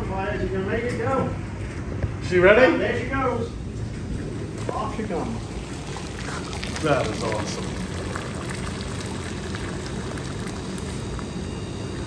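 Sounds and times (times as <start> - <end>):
sap boiling and bubbling: 3.6 - 12.0.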